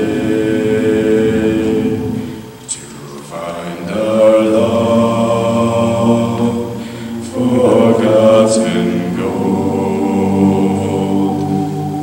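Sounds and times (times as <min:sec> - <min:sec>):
a cappella group singing a chord: 0:00.0 - 0:12.0.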